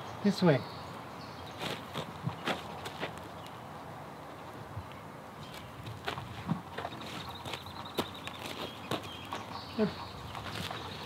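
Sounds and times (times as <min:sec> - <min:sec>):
footsteps on sandy gravel: 0:01.6 - 0:03.3, 0:05.5 - 0:11.0.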